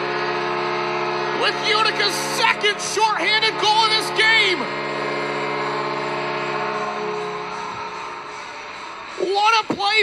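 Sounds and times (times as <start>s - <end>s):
goal horn chord: 0.0s - 10.0s.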